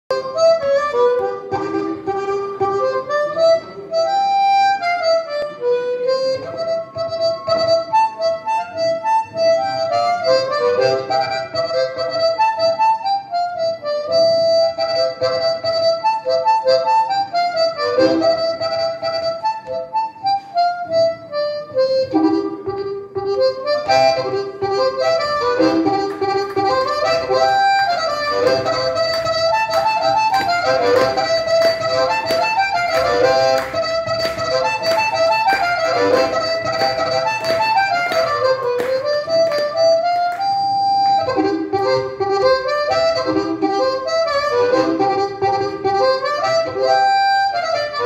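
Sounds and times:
blues harmonica solo: 0.1s - 48.0s.

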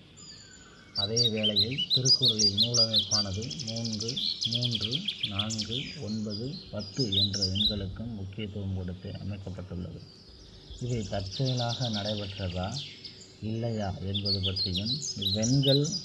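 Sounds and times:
small birds chirping: 0.0s - 16.0s
steady low hum: 0.0s - 16.0s
person speaking: 1.0s - 10.1s, 10.8s - 16.0s.

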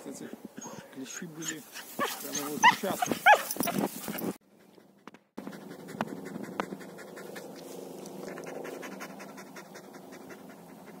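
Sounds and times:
dog panting: 0.6s - 11.0s.

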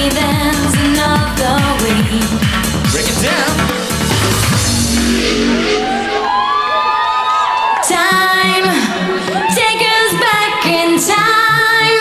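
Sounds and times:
synthesizer tones gliding upward: 3.0s - 9.2s.

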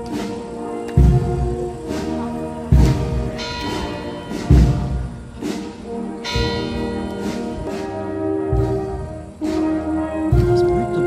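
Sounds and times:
church bells ringing: 0.0s - 11.0s.

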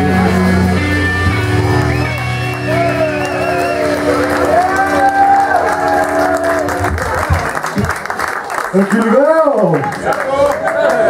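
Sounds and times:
electric guitar chord: 0.0s - 7.5s
crowd cheering: 0.0s - 11.0s
audience applauding: 1.3s - 11.0s.

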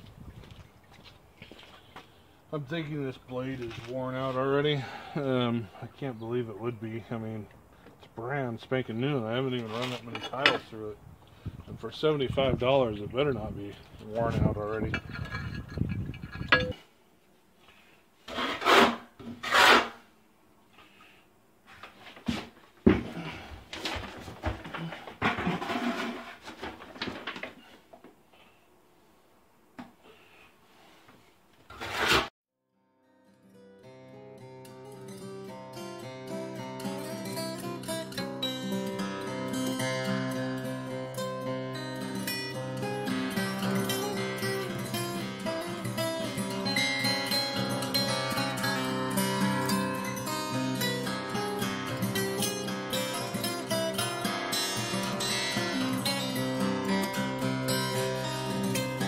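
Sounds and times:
acoustic guitar music: 2.5s - 7.5s, 32.8s - 59.0s
trowel scraping mortar on board: 18.3s - 20.0s, 31.7s - 32.3s.

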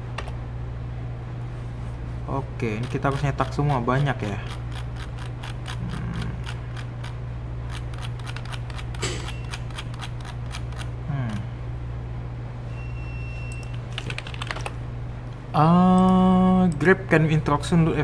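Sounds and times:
low steady hum: 0.0s - 18.0s
keyboard keys clicking: 14.0s - 14.8s.

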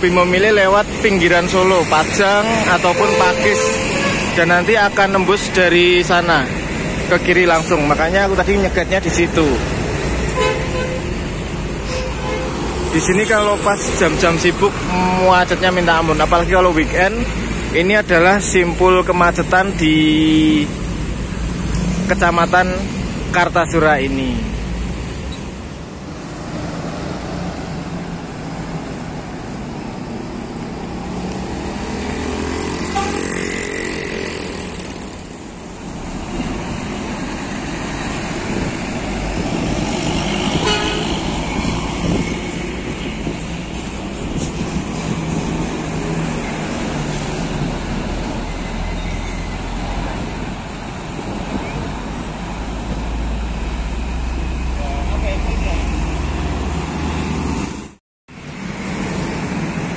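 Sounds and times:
vehicles driving past: 0.0s - 59.9s
vehicle horn: 2.7s - 4.5s, 10.3s - 11.2s, 11.8s - 12.8s, 32.8s - 33.5s, 40.3s - 41.2s.

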